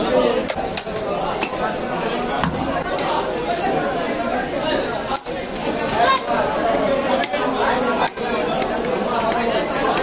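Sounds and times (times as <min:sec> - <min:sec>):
market voices: 0:00.0 - 0:10.0.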